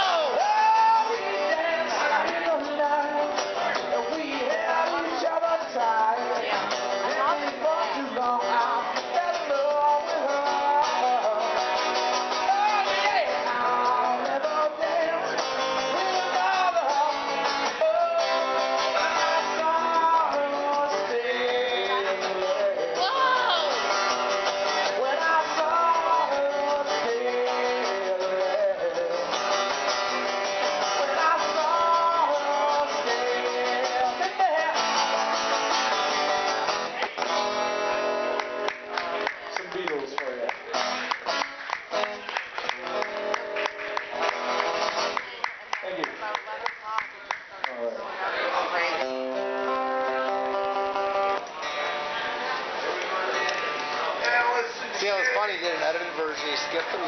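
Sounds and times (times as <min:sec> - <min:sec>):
man singing: 0:00.0 - 0:35.6
acoustic guitar strumming: 0:00.0 - 0:45.4, 0:48.3 - 0:57.0.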